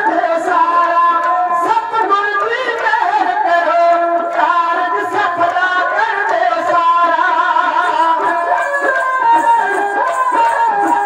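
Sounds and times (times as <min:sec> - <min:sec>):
bowed sarangi melody: 0:00.0 - 0:11.0.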